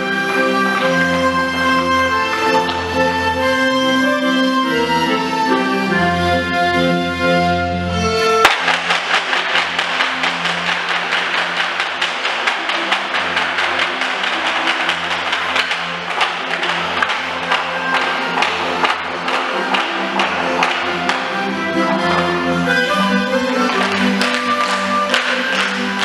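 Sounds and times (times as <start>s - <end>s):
people clapping in rhythm: 0.0s - 4.2s, 8.4s - 26.0s
folk dance music: 0.0s - 26.0s.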